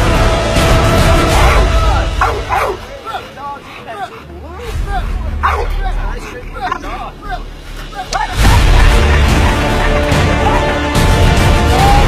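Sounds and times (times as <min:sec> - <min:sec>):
people's voices: 0:00.8 - 0:11.0
dog barking sharply: 0:05.4 - 0:05.8.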